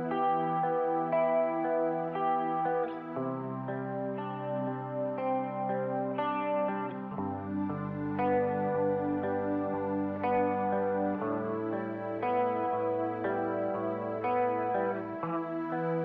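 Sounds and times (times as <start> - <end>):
electric guitar chords: 0.0 - 16.0.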